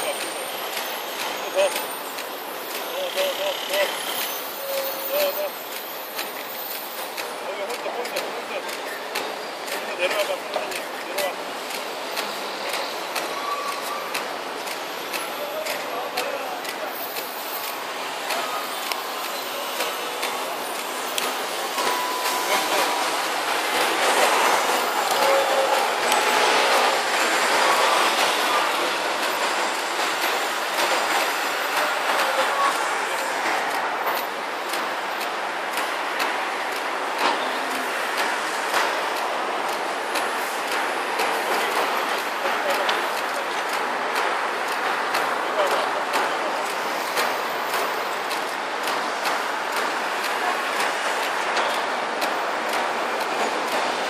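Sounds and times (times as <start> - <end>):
road traffic rushing: 0.0 - 54.0
vehicles and buses passing: 0.0 - 54.0.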